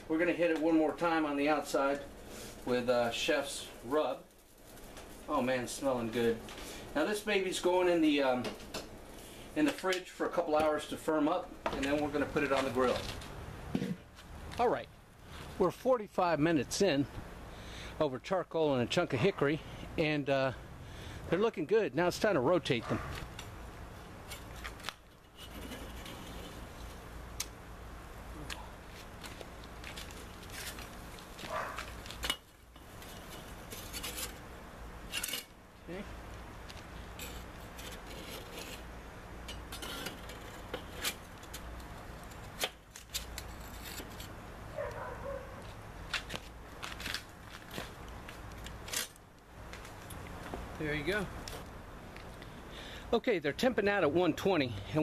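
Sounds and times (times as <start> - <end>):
metal spatulas scraping grill grate: 24.2 - 27.1, 32.1 - 35.6, 37.0 - 44.4.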